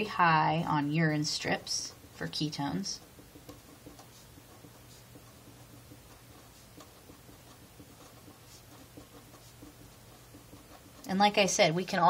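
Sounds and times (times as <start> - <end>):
marker scratching on paper: 0.0 - 12.0.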